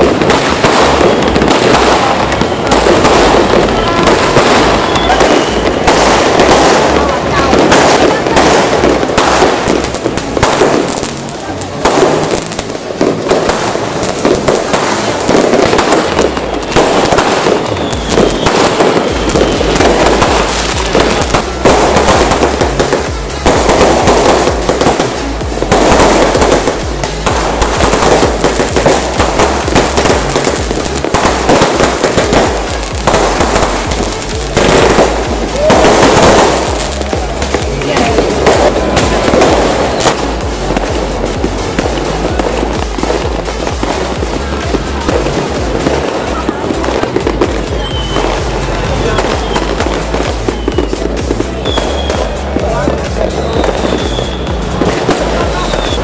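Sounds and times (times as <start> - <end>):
fireworks bangs and crackles: 0.0 - 56.0.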